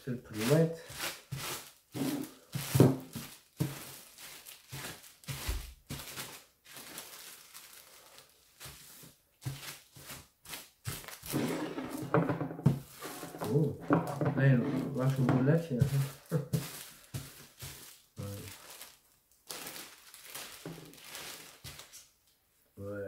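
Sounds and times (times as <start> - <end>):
plastic bag crinkling: 0.3 - 22.2.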